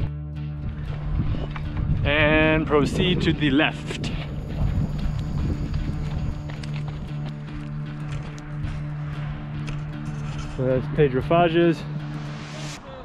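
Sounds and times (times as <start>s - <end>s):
music with held low notes: 0.0s - 13.0s
running footsteps on dirt: 0.6s - 2.1s, 3.2s - 10.5s.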